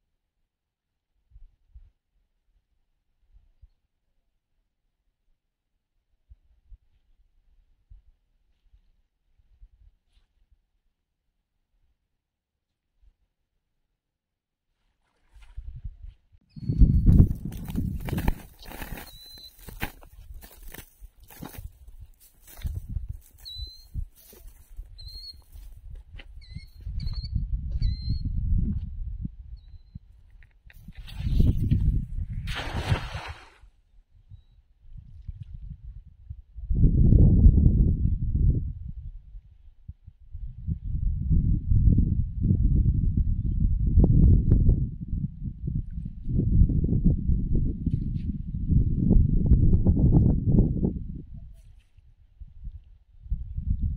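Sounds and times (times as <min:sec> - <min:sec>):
wind buffeting microphone: 0:15.6 - 0:30.2, 0:30.8 - 0:33.4, 0:34.2 - 0:53.9
bird chirps: 0:16.5 - 0:17.2, 0:19.0 - 0:19.7, 0:23.4 - 0:24.0, 0:25.0 - 0:25.5, 0:26.4 - 0:28.4
net splashing into water: 0:32.4 - 0:33.7.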